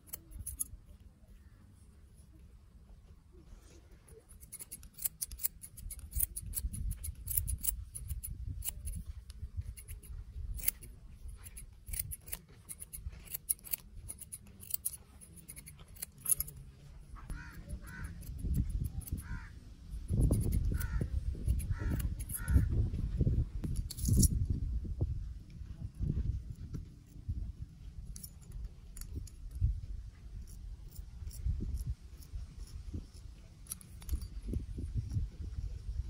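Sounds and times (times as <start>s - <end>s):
scissors snipping hair: 0.0s - 0.8s, 4.1s - 16.6s, 17.3s - 22.7s.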